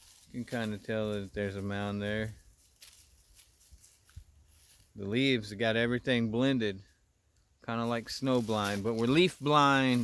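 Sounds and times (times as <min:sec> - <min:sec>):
footsteps crunching dry leaves: 0:00.0 - 0:05.4, 0:07.8 - 0:10.0.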